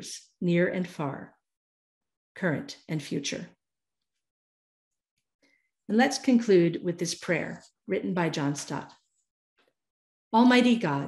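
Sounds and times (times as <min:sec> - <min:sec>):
woman speaking: 0:00.0 - 0:01.4, 0:02.4 - 0:03.6, 0:05.9 - 0:09.0, 0:10.4 - 0:11.0.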